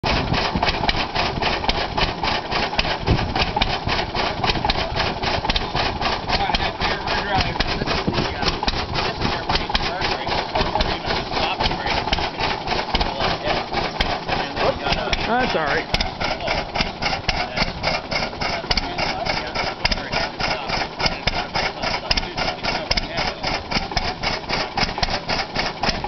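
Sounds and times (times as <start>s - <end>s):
tractor engine running: 0.0s - 26.0s.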